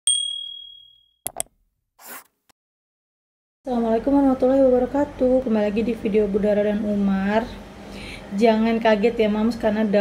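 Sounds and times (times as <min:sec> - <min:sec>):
bright bell-like ding: 0:00.0 - 0:01.2.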